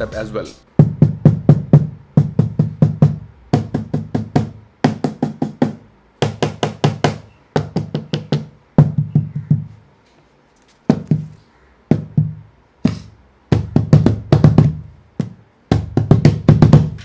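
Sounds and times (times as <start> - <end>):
cajon played by hand: 0.8 - 9.7, 10.9 - 17.0.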